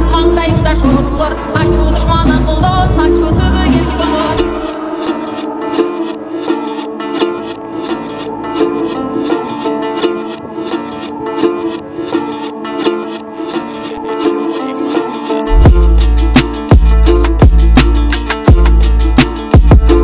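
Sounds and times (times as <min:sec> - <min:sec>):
plucked lute strummed fast: 0:00.0 - 0:20.0.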